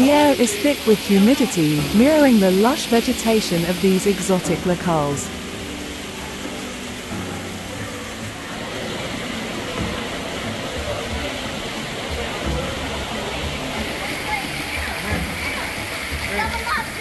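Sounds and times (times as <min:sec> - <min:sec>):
water rushing and splashing: 0:00.0 - 0:17.0.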